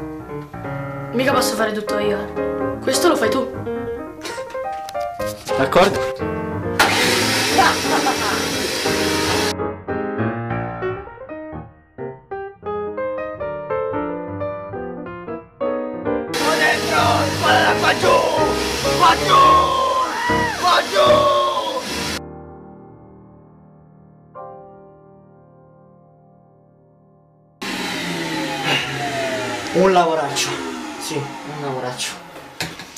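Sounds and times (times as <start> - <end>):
piano music: 0.0 - 32.9
vacuum cleaner running: 6.8 - 9.5, 16.4 - 22.2, 27.6 - 32.9.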